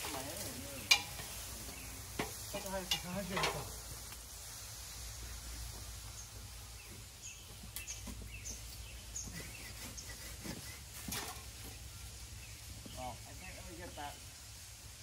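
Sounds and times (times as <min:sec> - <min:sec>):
small birds chirping: 0:00.0 - 0:14.7.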